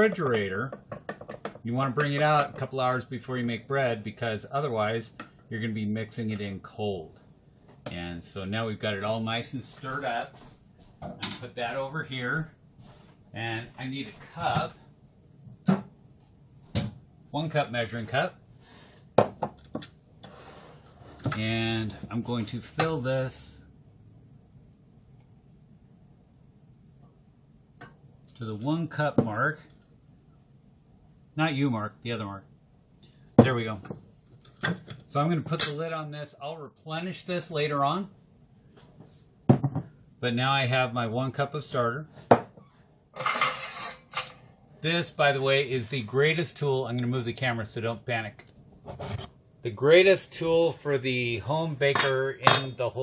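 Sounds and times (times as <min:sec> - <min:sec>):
kitchenware scraping rattle: 0:43.1 - 0:44.4
kitchenware clink: 0:52.0 - 0:52.9.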